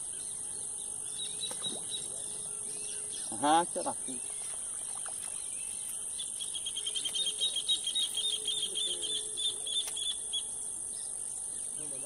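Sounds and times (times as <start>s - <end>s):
bird chirping: 0.0s - 12.0s.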